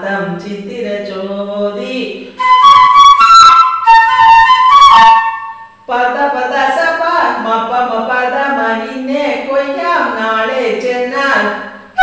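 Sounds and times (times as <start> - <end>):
bamboo flute playing: 2.4 - 5.9.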